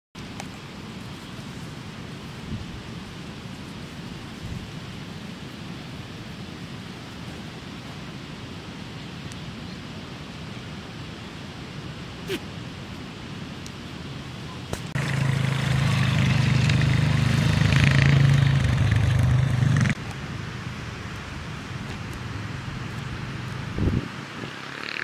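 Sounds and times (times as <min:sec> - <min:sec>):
outdoor background hiss: 0:00.2 - 0:25.0.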